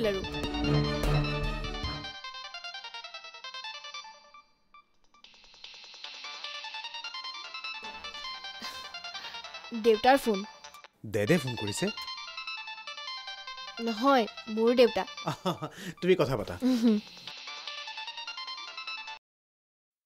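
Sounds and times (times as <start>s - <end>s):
smartphone ringtone melody: 0.2s - 5.5s, 6.3s - 15.7s, 16.6s - 19.2s.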